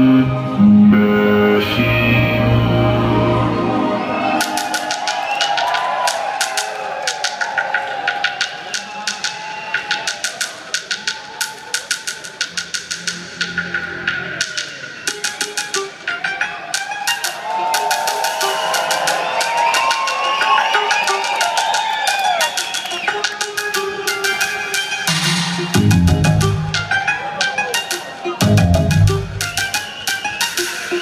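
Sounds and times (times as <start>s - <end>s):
clicking electronic beats: 4.3s - 31.0s.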